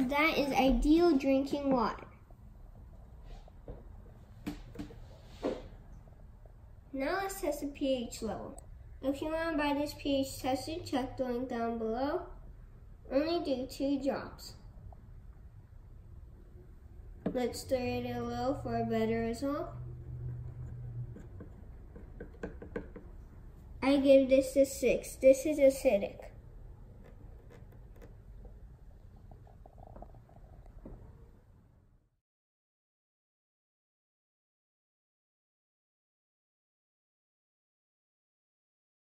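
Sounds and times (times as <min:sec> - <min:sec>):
wooden stick tapping plastic cup: 0:21.1 - 0:23.1.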